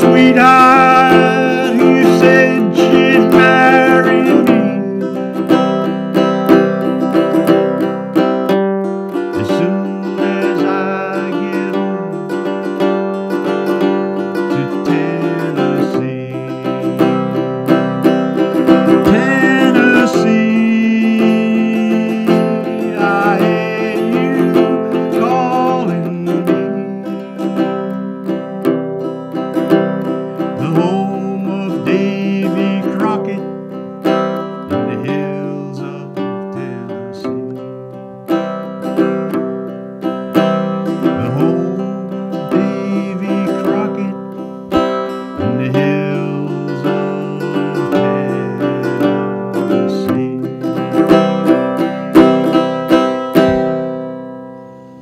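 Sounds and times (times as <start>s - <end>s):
held melody notes: 0.0s - 55.0s
strummed acoustic guitar: 0.0s - 55.0s.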